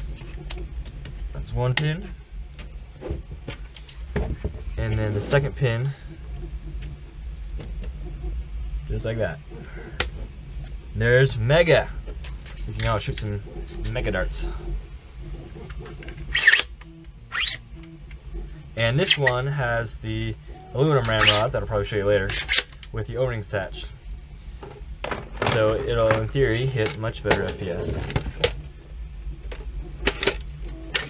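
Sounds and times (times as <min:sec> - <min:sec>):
plastic parts scraping: 0:12.1 - 0:19.4, 0:20.9 - 0:21.6, 0:22.2 - 0:22.9.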